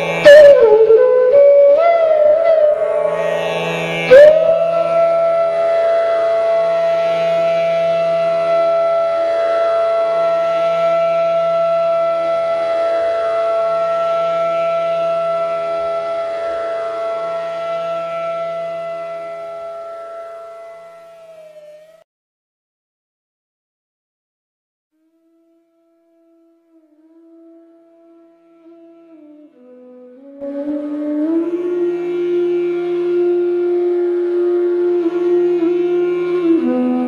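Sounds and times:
flute long held note: 0.0s - 22.1s, 25.0s - 37.0s
soft steady drone: 2.4s - 21.2s.

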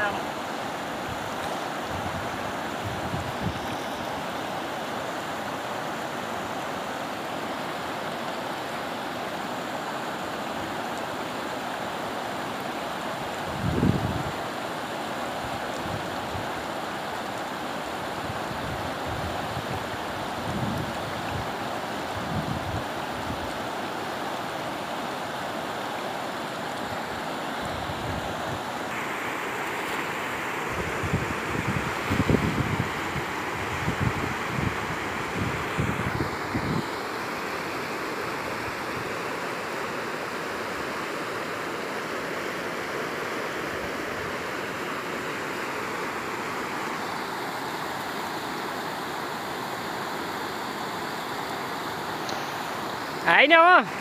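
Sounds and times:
river rushing over rocks: 0.0s - 54.0s.

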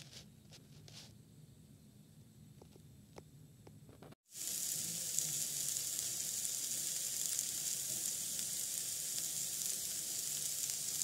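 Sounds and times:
vegetables sizzling in a pan: 4.2s - 11.0s.

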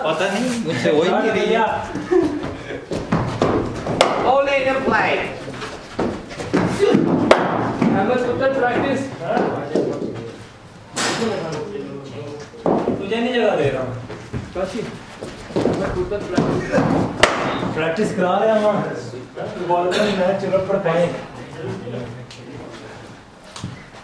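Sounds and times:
men talking: 0.0s - 3.2s, 4.0s - 23.3s
cricket ball knocks: 3.9s - 4.3s.

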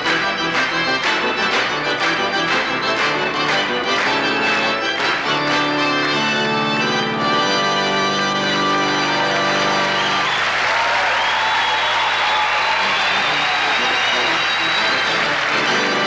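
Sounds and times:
audience applauding: 0.0s - 16.0s
organ playing chords: 0.0s - 16.0s.

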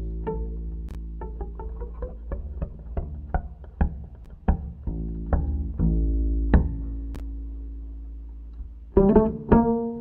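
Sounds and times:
double bass plucked notes: 0.0s - 10.0s.

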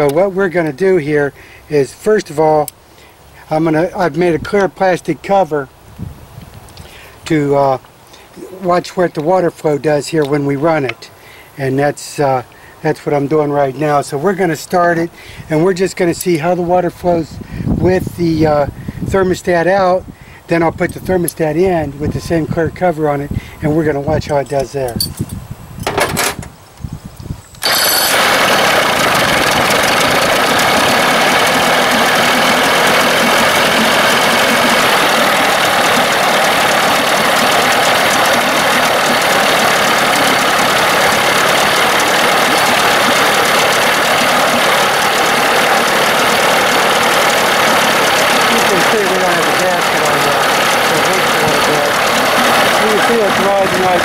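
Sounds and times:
outboard motor cranking: 27.6s - 54.0s
outboard motor idling: 27.6s - 54.0s.

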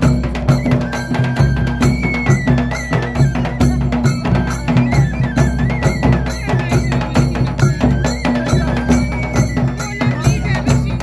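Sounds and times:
barrel drum beaten with stick: 0.0s - 11.0s
metallic clanging beat: 0.0s - 11.0s.

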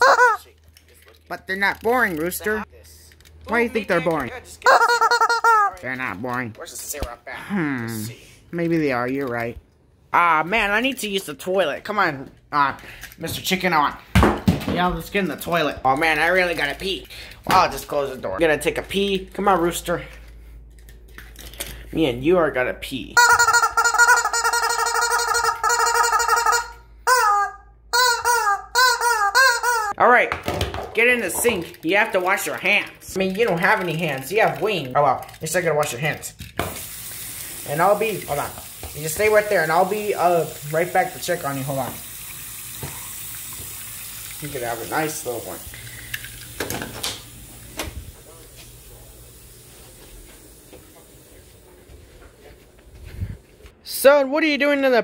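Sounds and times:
rubber chicken toy squealing: 0.0s - 0.5s, 4.6s - 5.8s, 23.2s - 30.0s.

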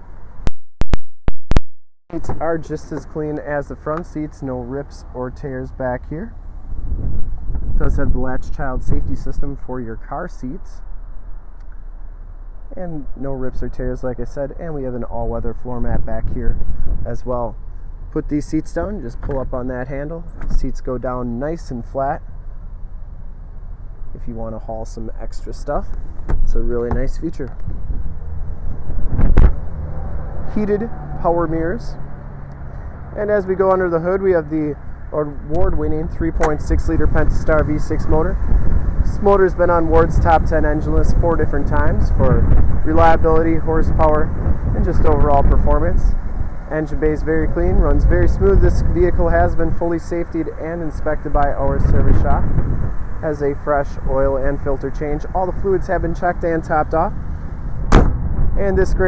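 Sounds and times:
steady low rumble: 2.1s - 59.0s
car door shutting: 2.2s - 3.2s, 20.3s - 20.7s, 25.9s - 28.1s, 36.4s - 36.6s, 57.8s - 58.5s.

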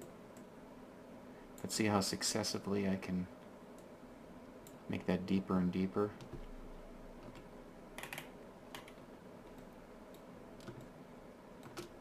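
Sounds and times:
computer keyboard keys clicking: 7.2s - 10.9s, 11.6s - 12.0s.

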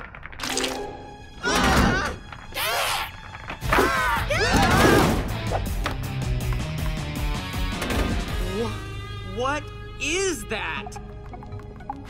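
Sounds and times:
cartoon background music: 0.4s - 12.0s.

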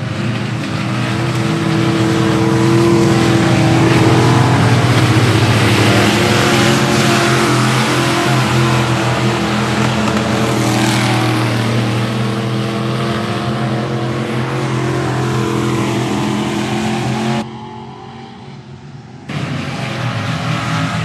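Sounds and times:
race car engines: 0.0s - 21.0s.

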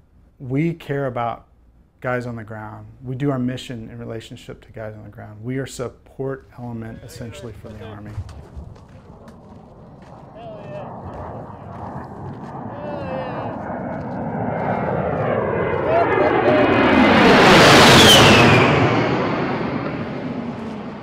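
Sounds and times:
jet engines passing overhead: 7.0s - 21.0s.

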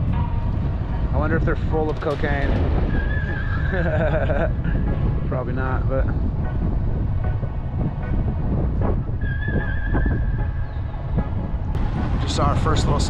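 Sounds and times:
wind rumbling on microphone: 0.0s - 13.0s
high whistle-like tone: 9.2s - 11.4s.

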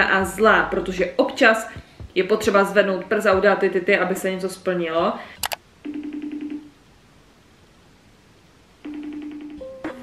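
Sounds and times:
phone ringing tone with flutter: 5.8s - 6.7s, 8.8s - 9.7s.

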